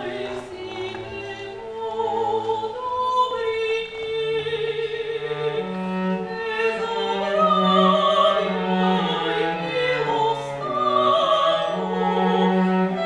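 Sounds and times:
bowed cello: 0.0 - 13.0
soprano singing: 0.0 - 13.0.

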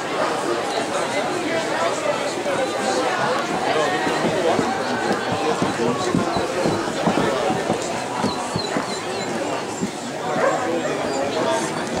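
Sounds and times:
murmur of voices in hall: 0.0 - 12.0.

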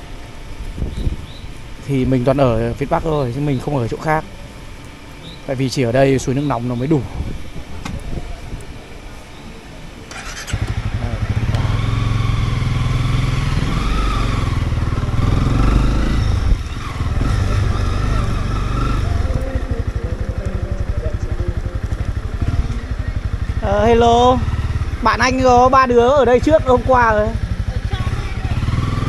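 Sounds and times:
motorcycle engine: 0.0 - 29.0.

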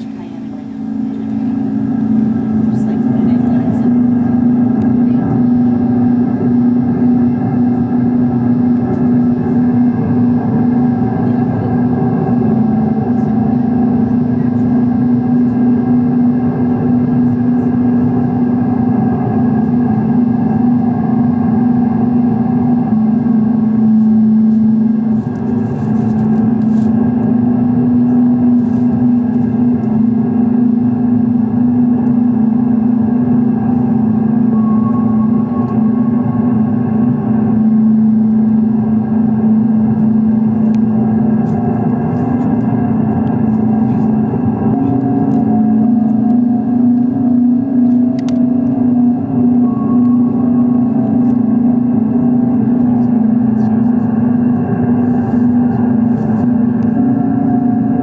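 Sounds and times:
distorted synthesizer drone: 0.0 - 58.0
short higher synth tones: 33.4 - 40.5, 44.2 - 53.6.

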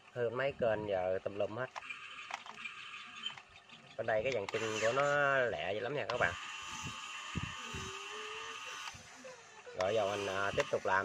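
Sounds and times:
electric motors whining: 0.0 - 11.0
person speaking: 4.0 - 6.5, 9.7 - 11.0.

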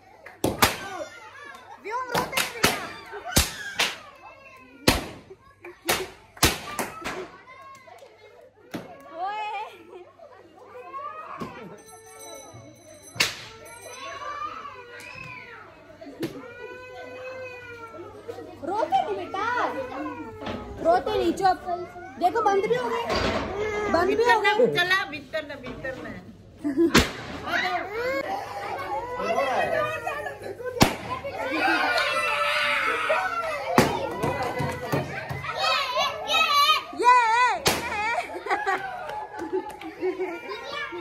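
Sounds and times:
children talking and shouting: 0.0 - 41.0
sharp crack: 26.9 - 27.4, 30.8 - 31.2, 37.6 - 38.1
sharp pop: 26.9 - 27.4, 30.8 - 31.1, 37.6 - 38.0.

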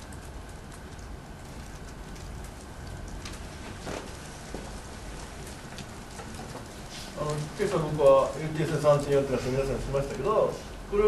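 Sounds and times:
room noise hiss: 0.0 - 11.0.

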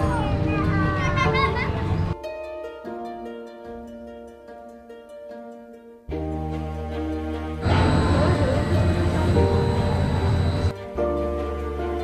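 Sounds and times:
children talking and calling out: 0.0 - 2.2.

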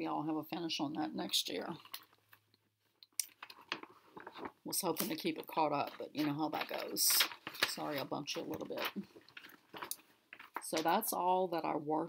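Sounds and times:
soft handling noises: 1.7 - 11.0.

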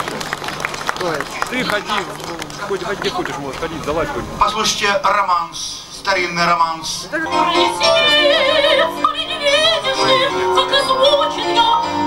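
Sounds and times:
electronic keyboard accompaniment: 7.2 - 12.0
woman singing operatically: 7.2 - 12.0.

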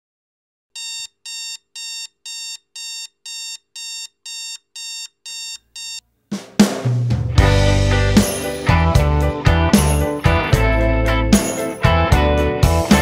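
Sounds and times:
alarm clock electronic beeps: 0.8 - 6.0.

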